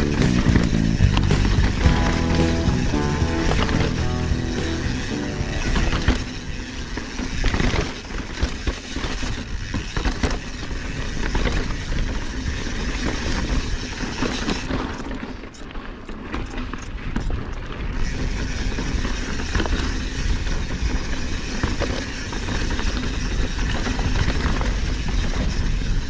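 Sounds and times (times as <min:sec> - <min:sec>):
background music: 0:00.0 - 0:06.8
bike clicks and rattles: 0:00.0 - 0:26.0
bike tyres on dirt trail: 0:00.0 - 0:26.0.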